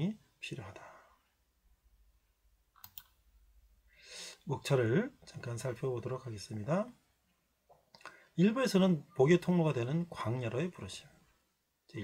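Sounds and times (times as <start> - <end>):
computer mouse clicks: 2.7 - 3.2.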